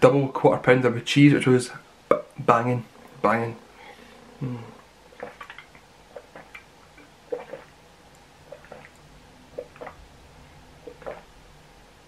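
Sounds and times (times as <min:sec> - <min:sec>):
person gulping from a bottle: 0:04.4 - 0:07.8, 0:08.4 - 0:10.0, 0:10.8 - 0:11.3.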